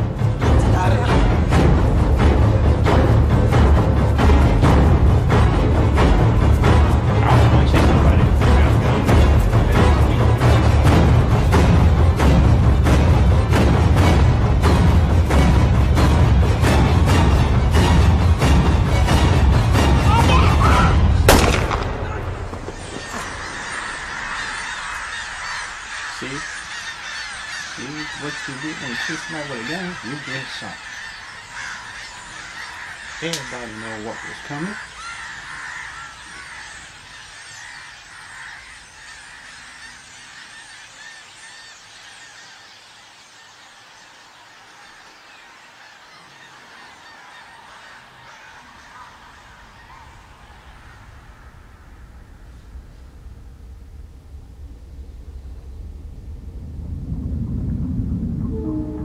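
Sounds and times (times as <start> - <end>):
birds calling: 0.0 - 59.0
birds taking flight: 1.5 - 59.0.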